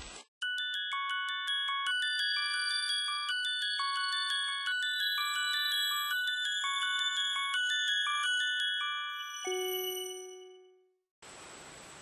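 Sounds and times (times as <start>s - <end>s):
chime note ringing out: 6.2s - 10.9s.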